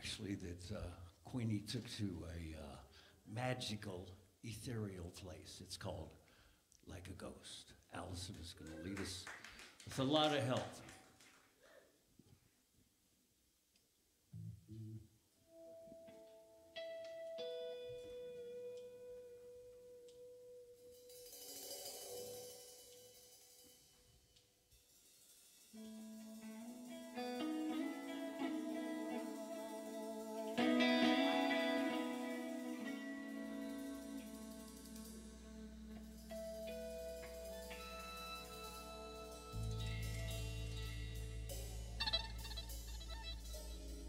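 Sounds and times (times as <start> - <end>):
high shimmer: 20.9 - 24.0, 24.8 - 44.0
live band playing: 25.8 - 44.0
single guitar notes: 25.8 - 44.0.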